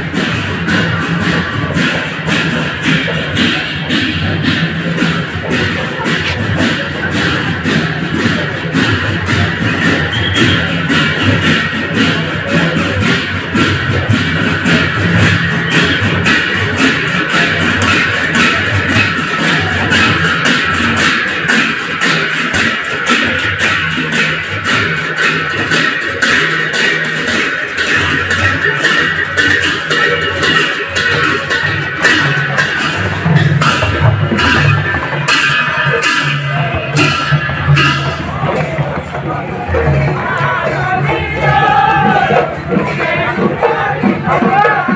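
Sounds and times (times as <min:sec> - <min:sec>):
barrel drums beaten fast: 0:00.0 - 0:44.9
hand cymbals clashing: 0:00.0 - 0:44.9.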